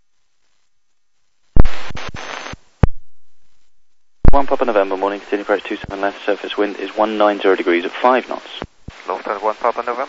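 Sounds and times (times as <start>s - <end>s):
radio static hiss: 0.2s - 10.0s.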